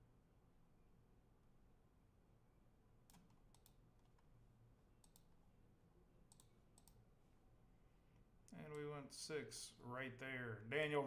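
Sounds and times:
faint computer mouse clicks: 3.0 - 4.3, 5.0 - 5.3, 6.3 - 7.0.

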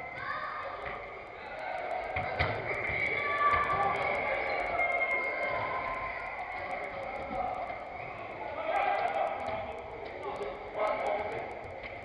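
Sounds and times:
echoing indoor hall din: 0.0 - 12.0.

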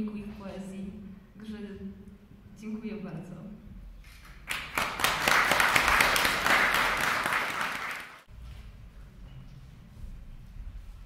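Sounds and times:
audience applauding: 4.2 - 8.3.

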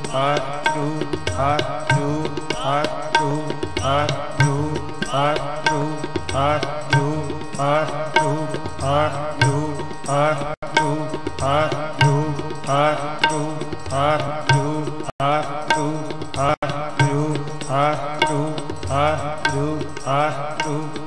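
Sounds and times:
tabla: 0.0 - 21.0
voices singing a repeated phrase: 0.0 - 21.0.

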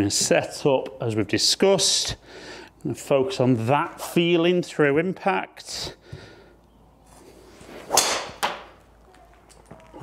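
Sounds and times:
golf club swing whoosh: 7.5 - 8.5
golf club striking ball: 7.9 - 8.7.

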